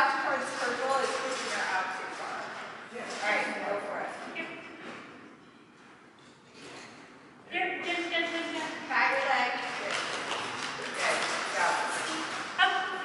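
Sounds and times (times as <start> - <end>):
voice echoing in large hall: 7.5 - 13.0.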